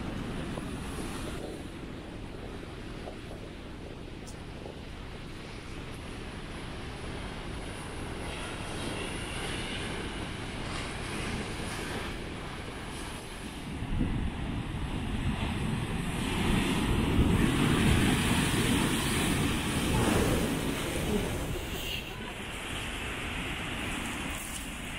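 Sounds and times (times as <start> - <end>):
wind buffeting microphone: 0.0 - 24.9
surf breaking on rocky shore: 4.8 - 24.9.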